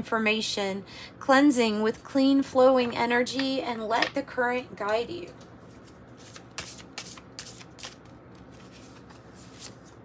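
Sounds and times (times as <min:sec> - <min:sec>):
cards being shuffled: 0:05.7 - 0:10.0.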